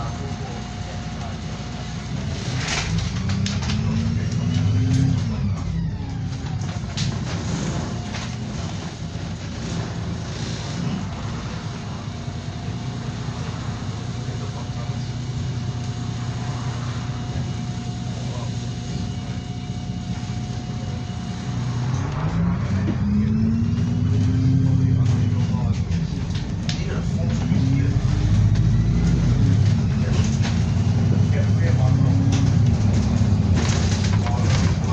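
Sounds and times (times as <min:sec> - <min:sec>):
bus engine revving up: 0:00.0 - 0:34.9
bus engine with faint whine: 0:00.0 - 0:34.9.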